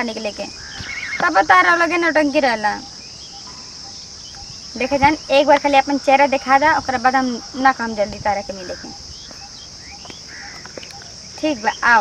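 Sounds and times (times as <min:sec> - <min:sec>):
woman's voice: 0:00.0 - 0:00.6, 0:01.2 - 0:02.9, 0:04.7 - 0:09.0, 0:11.4 - 0:12.0
insects chirring: 0:00.0 - 0:12.0.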